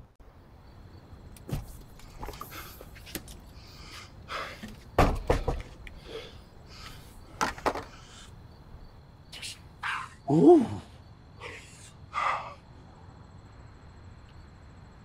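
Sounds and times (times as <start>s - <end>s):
scuffs and thumps: 1.4s - 3.3s.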